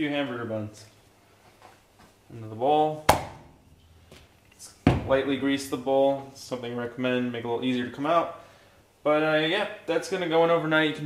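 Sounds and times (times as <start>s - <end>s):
dough thudding into plastic bowl: 3.1s - 3.6s.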